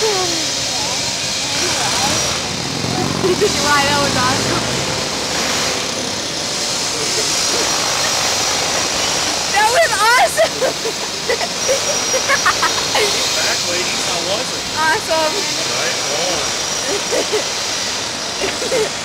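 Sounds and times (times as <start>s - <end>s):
girls laughing: 0.0s - 0.7s, 1.4s - 4.7s, 6.8s - 19.0s.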